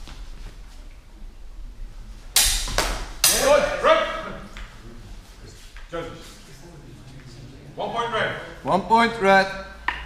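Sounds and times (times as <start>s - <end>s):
swords clashing: 2.4s - 3.8s.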